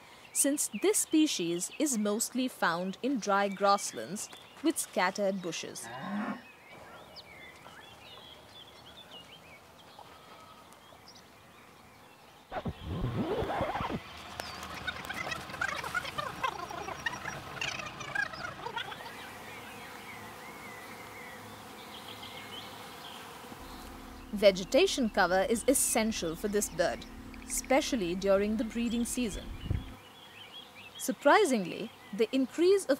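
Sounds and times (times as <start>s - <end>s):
birds chirping: 0.0s - 32.9s.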